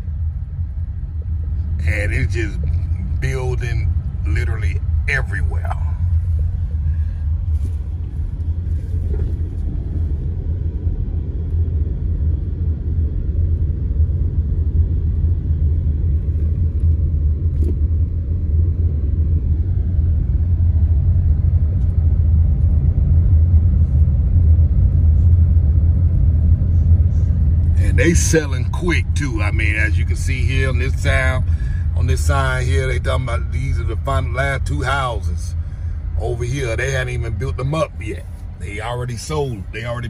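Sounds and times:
car engine and tyres on rough road: 0.0 - 40.0.

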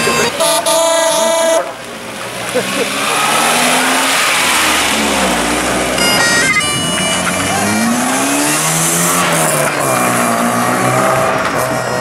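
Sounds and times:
rally car engine revving: 0.0 - 12.0.

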